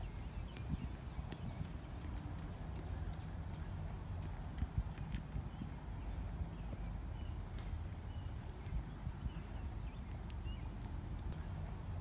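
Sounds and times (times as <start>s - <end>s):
light clicking steps: 0.0s - 6.9s, 10.0s - 12.0s
steady low rumble: 0.0s - 12.0s.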